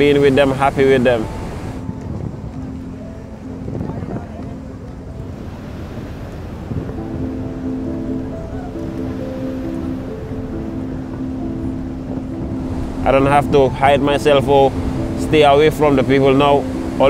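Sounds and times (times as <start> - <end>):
sea waves rushing: 0.0 - 17.0
soft music of long held notes: 0.0 - 17.0
wind: 0.0 - 17.0.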